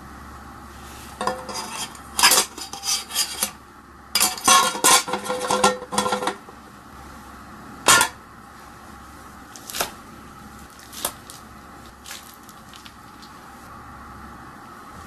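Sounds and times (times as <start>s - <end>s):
metal kitchenware clanking: 1.2s - 3.6s, 4.2s - 6.4s, 7.9s - 8.2s.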